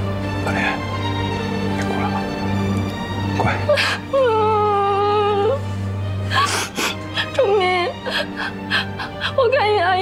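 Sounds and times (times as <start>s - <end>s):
background music: 0.0s - 10.0s
woman crying: 3.6s - 5.6s, 6.2s - 10.0s.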